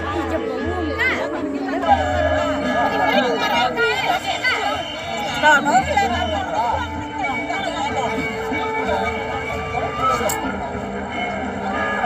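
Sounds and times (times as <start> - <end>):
audience voices chattering: 0.0 - 12.0.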